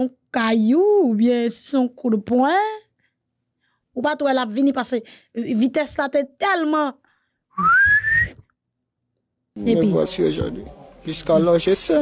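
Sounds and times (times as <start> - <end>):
whistled note rising in pitch: 7.6 - 8.4.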